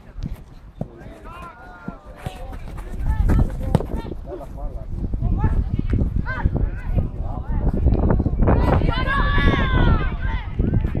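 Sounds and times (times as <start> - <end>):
ball being kicked: 0.2 - 4.1
players shouting: 1.0 - 4.5, 8.6 - 10.5
wind rumble on microphone: 2.2 - 11.0.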